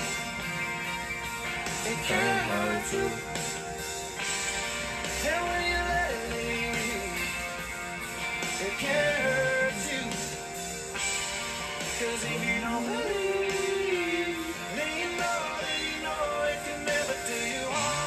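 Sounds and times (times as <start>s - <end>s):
country song with band: 0.0s - 18.0s
man singing: 1.8s - 3.6s, 5.2s - 7.4s, 8.5s - 10.6s, 11.9s - 18.0s.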